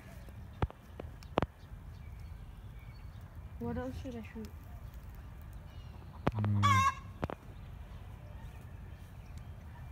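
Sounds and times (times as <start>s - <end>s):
chicken call: 6.4s - 7.1s.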